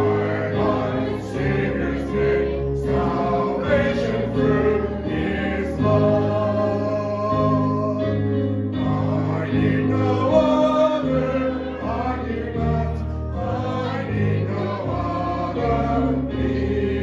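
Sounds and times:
congregation singing a hymn: 0.0 - 17.0.

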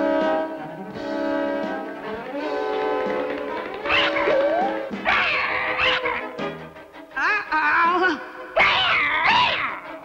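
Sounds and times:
cartoon chase music: 0.0 - 10.0
cat yowling: 3.8 - 6.4, 8.6 - 10.0.

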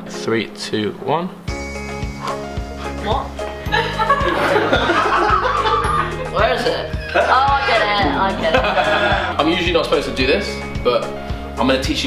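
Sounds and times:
background music with beat: 1.5 - 12.0
people laughing: 3.7 - 9.7.

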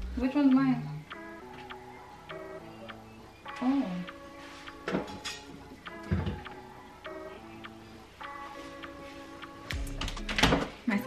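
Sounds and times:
light ticking beat: 0.0 - 11.0
soft background music: 0.0 - 11.0.

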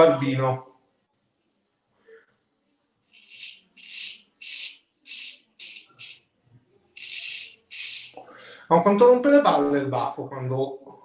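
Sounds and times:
straight razor scraping whiskers: 3.1 - 6.2, 7.0 - 8.2.

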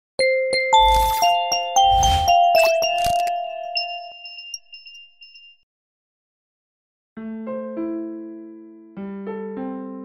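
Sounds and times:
bell-like chime notes: 0.2 - 5.6.

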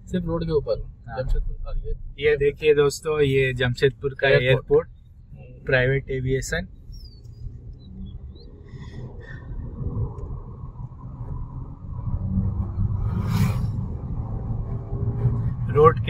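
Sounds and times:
vehicle engine and tyre rumble: 0.0 - 16.0.

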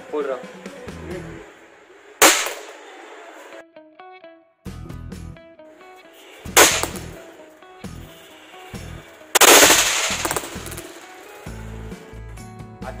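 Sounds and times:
background music with a beat: 0.4 - 1.4, 4.0 - 13.0
toy caps cracking: 6.6 - 7.2, 9.4 - 11.4.

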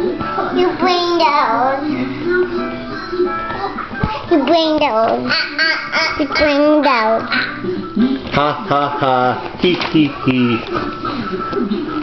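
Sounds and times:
small child singing: 0.5 - 7.3.

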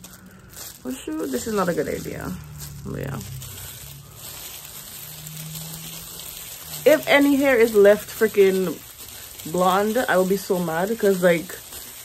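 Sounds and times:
gloved hand rustling through hair: 0.0 - 12.0.

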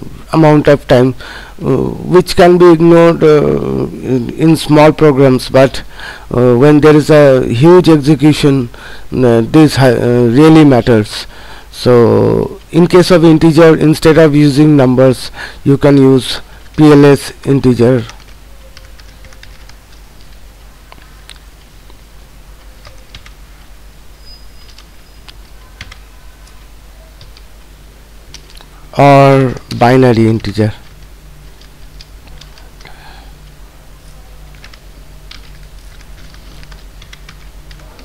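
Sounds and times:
steady low hum: 0.0 - 38.0
keyboard keys clicking: 18.1 - 21.5, 22.6 - 23.4, 24.7 - 26.6.

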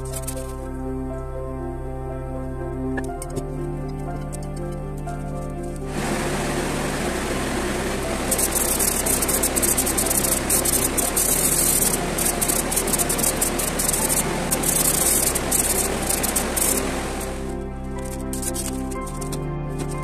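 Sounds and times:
steady low hum: 5.8 - 19.3
paint spray gun hissing: 5.9 - 17.6.

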